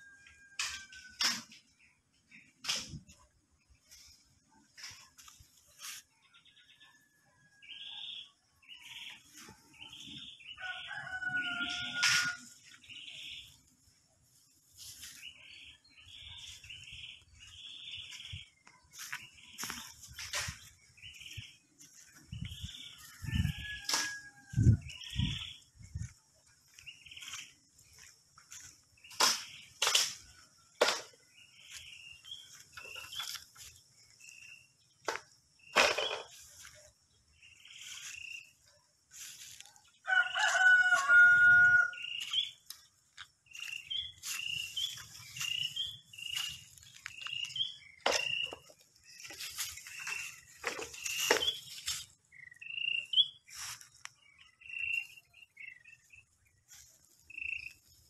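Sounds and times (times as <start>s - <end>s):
rooster crowing: 10.6s - 12.6s, 23.0s - 24.8s, 40.0s - 42.1s.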